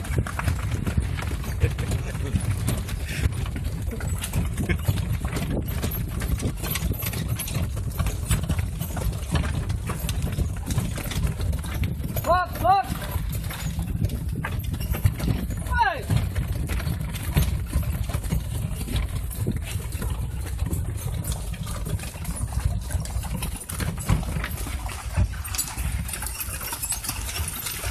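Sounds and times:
horse hooves clip-clopping: 0.0 - 27.9
wooden cart knocking and rattling: 0.0 - 27.9.

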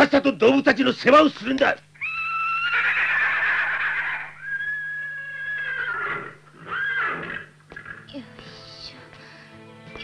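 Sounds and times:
horses whinnying: 2.0 - 8.1.

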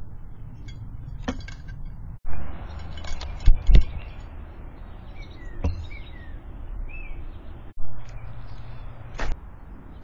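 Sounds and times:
outdoor background noise: 0.0 - 10.0
bird chirps: 2.5 - 9.2.

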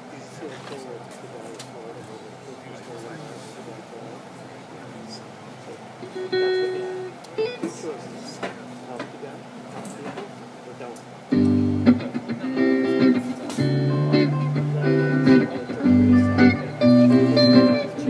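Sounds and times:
electric guitar chords: 6.0 - 8.0, 11.3 - 18.0
guitar handling sounds: 11.3 - 18.0.

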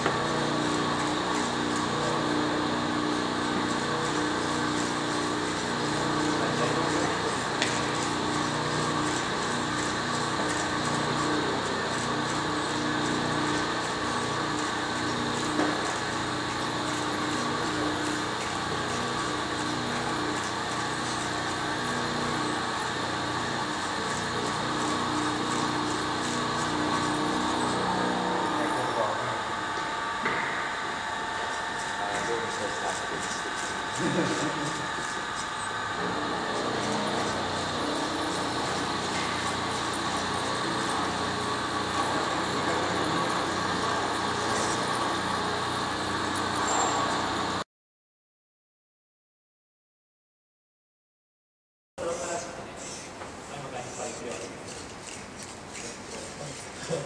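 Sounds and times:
mechanical hum with whining tones: 0.0 - 47.6, 52.0 - 57.0.

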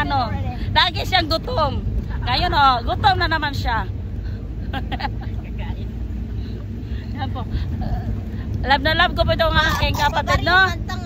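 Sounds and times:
vehicle engine and road rumble: 0.0 - 11.0.

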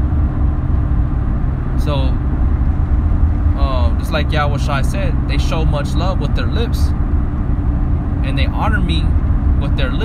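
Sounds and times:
faint constant hum: 0.0 - 10.0
steady low rumble: 0.0 - 10.0.

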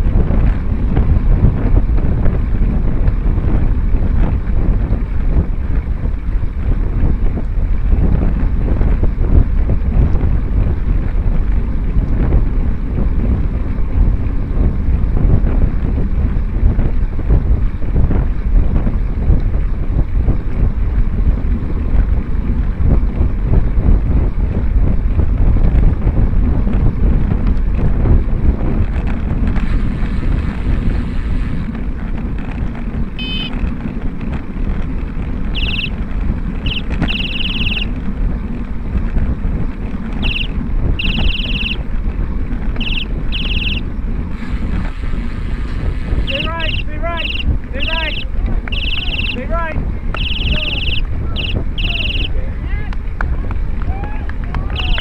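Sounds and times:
wheels rolling on asphalt: 0.0 - 55.0
wind buffeting microphone: 0.0 - 55.0.

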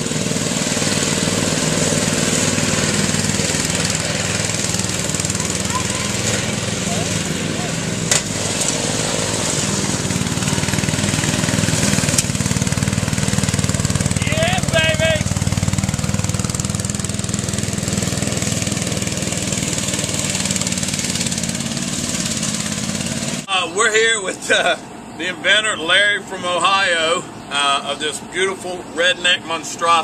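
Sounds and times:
lawnmower engine running: 0.0 - 30.0
faint voice: 5.4 - 7.8.

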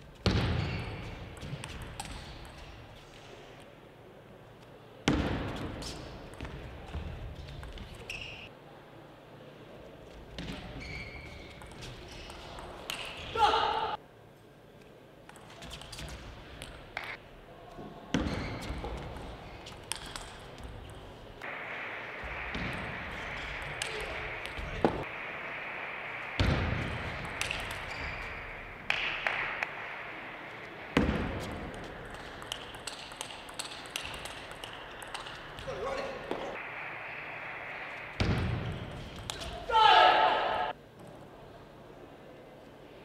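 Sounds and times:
hall background noise: 11.6 - 43.0
ping pong ball clicking: 31.7 - 35.6.

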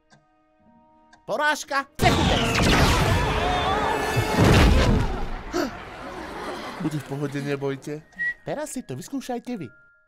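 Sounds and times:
music: 0.0 - 5.7, 6.8 - 10.0
loud sustained blast: 2.0 - 5.4
heavy crash: 2.0 - 5.6.

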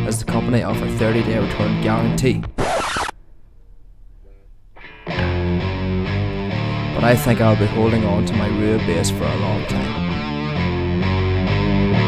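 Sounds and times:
electric bass: 4.8 - 12.0
electric guitar: 4.8 - 12.0.

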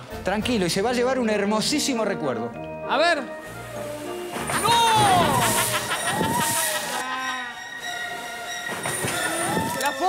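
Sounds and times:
orca squealing: 4.5 - 10.0.

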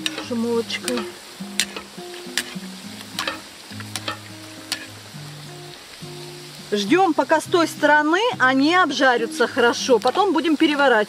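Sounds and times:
skimmer clicks: 0.0 - 4.9
dumplings sizzling in hot oil: 0.0 - 11.0.

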